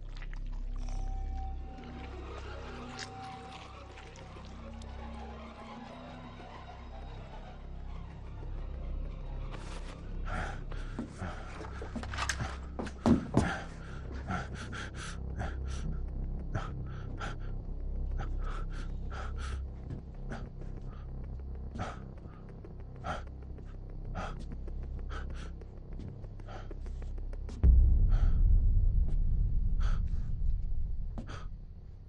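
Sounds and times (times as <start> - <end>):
person breathing quickly: 9.5 - 32.0
low steady rumble: 23.7 - 32.0.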